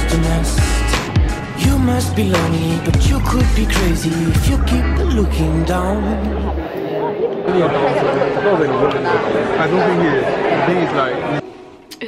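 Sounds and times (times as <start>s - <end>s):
babble of students chattering: 5.6s - 11.5s.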